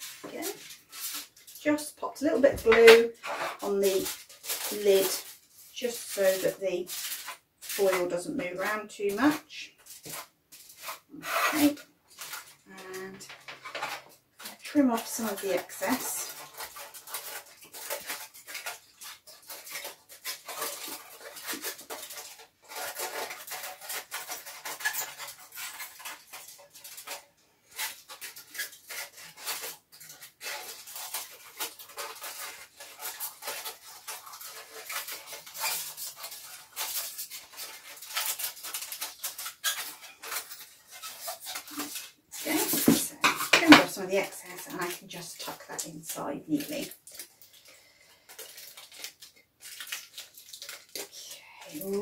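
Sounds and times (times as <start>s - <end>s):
kitchen foil crinkling: 0.0s - 52.0s.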